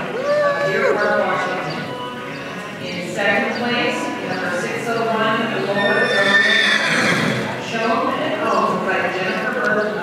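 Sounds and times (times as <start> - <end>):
horse whinnying: 5.7 - 7.5.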